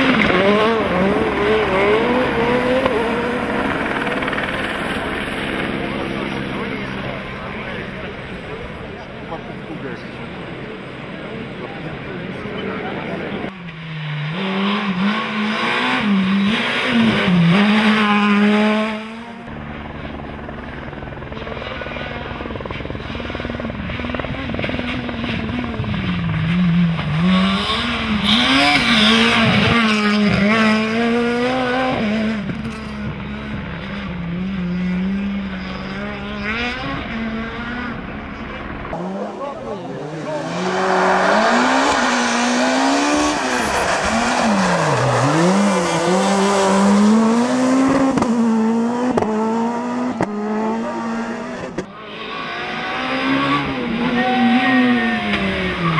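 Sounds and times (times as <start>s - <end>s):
engine revving through corners: 0.0s - 9.5s, 11.7s - 19.5s, 23.0s - 55.9s
rally cars passing at speed: 0.0s - 20.1s, 23.0s - 55.9s.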